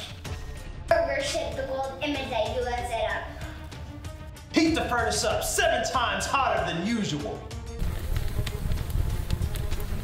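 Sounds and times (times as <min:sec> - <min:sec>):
fire crackles: 0:00.0 - 0:10.0
low rumble of burning flames: 0:07.8 - 0:10.0.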